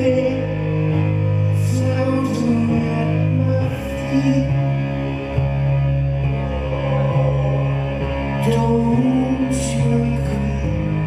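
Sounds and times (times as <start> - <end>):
low keyboard drone: 0.0 - 11.0.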